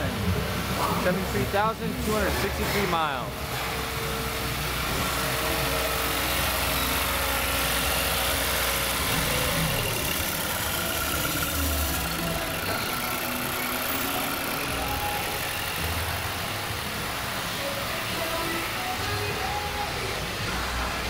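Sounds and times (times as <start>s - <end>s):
car engine idling: 3.8s - 20.1s.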